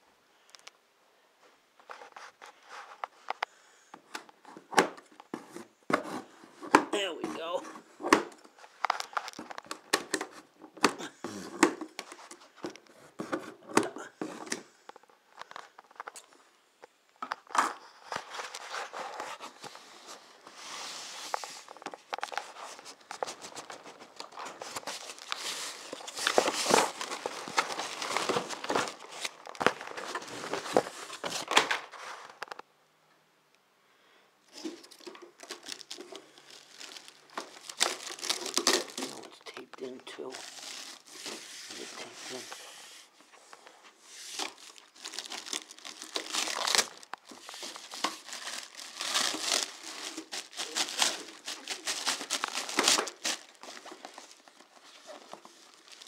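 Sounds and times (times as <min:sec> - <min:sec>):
plastic wrap crinkling: 0:17.4 - 0:32.6, 0:34.5 - 0:56.0
cardboard scraping: 0:17.6 - 0:32.3.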